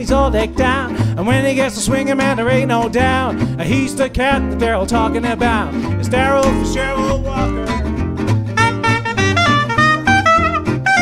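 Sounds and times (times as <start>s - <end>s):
stepping bass line: 0.0s - 11.0s
swing jazz band playing: 0.0s - 11.0s
saxophone lead line: 6.1s - 11.0s.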